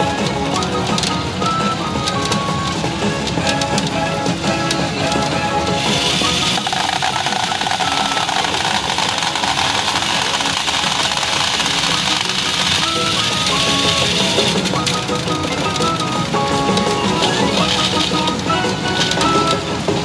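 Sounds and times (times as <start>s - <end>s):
pachinko machine music: 0.0s - 20.0s
pachinko parlor hiss-like din: 5.6s - 20.0s.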